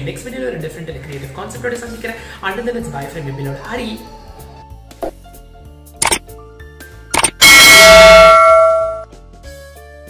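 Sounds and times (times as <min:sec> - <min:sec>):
quick click: 0:06.0 - 0:06.2, 0:07.2 - 0:07.4
bell ding: 0:07.2 - 0:09.0.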